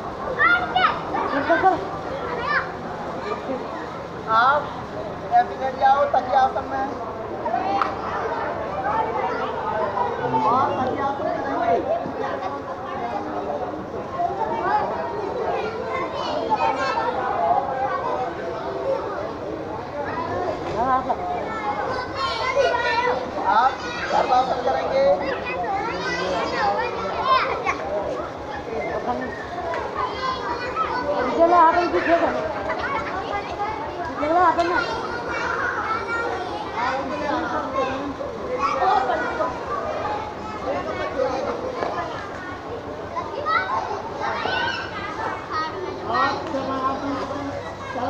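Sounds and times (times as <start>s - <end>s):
children talking and calling out: 0.0s - 48.0s.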